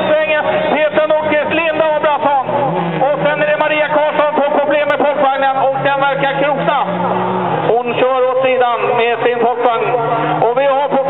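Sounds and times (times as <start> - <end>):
man commentating: 0.0 - 11.0
race car engines running: 0.0 - 11.0.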